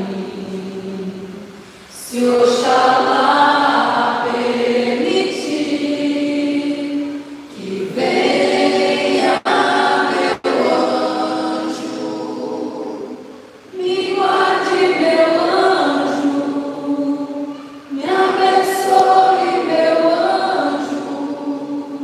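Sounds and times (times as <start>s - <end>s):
women singing together: 0.0s - 22.0s.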